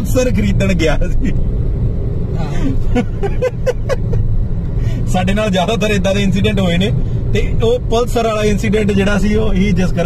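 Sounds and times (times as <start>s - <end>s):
road and engine rumble in car: 0.0s - 10.0s
people laughing: 2.6s - 4.2s.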